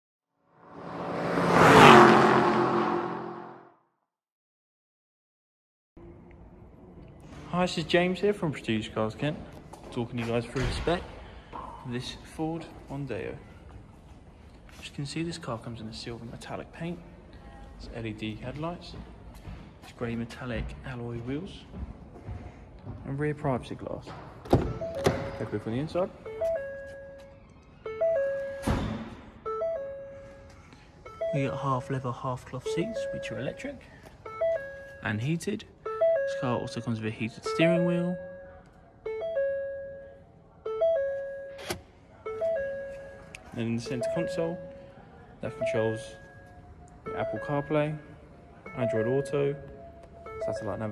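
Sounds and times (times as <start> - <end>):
car warning chime: 24.6 - 50.9.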